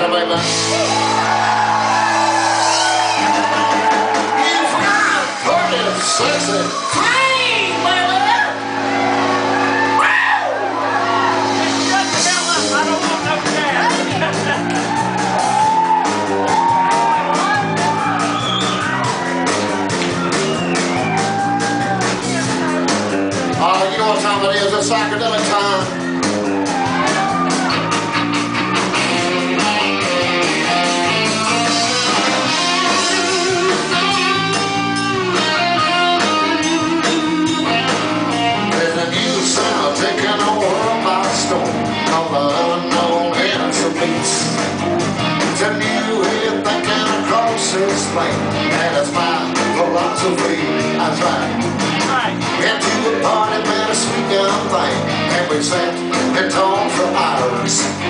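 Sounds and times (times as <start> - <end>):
electric guitar bending notes: 0.0 - 58.0
live band music: 0.0 - 58.0.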